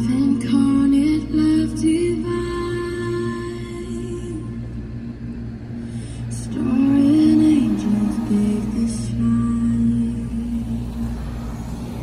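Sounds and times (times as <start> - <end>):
cars passing on road: 0.0 - 12.0.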